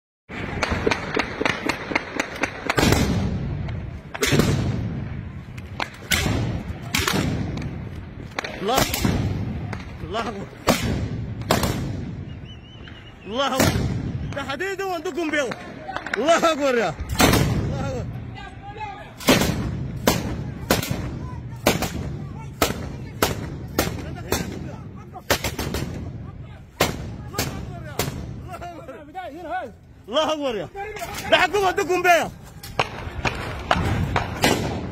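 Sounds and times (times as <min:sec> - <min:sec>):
heavy gunshots with rumbling echo: 0:00.3 - 0:12.4, 0:13.5 - 0:14.4, 0:17.0 - 0:18.1, 0:19.2 - 0:28.5, 0:32.8 - 0:34.9
rapid single gunshots: 0:04.1 - 0:05.0, 0:06.0 - 0:09.9, 0:10.6 - 0:12.2, 0:19.2 - 0:26.2, 0:32.8 - 0:34.9.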